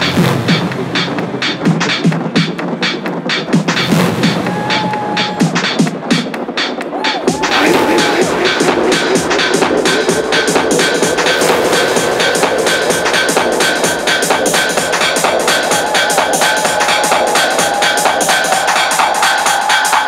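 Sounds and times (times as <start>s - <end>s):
fast electronic dance beat: 0.0s - 20.0s.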